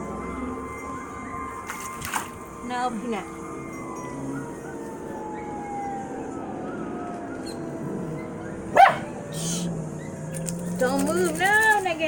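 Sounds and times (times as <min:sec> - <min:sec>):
small dog barking: 0:08.7 - 0:09.1.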